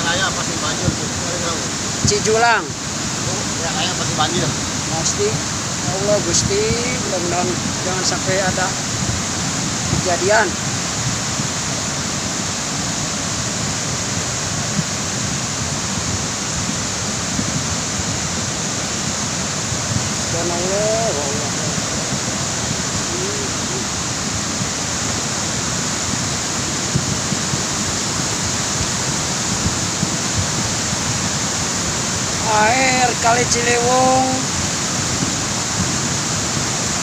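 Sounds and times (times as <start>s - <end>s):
floodwater rushing: 0.0s - 37.0s.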